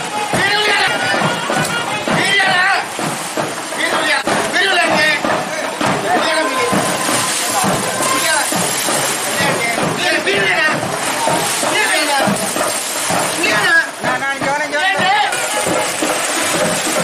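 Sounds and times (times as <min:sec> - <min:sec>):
people talking: 0:00.0 - 0:03.1, 0:03.7 - 0:17.0
water sloshing in a pool: 0:00.0 - 0:17.0.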